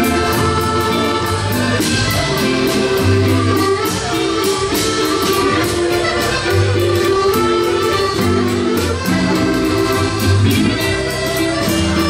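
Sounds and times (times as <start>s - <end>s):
accordions playing a waltz: 0.0s - 12.0s.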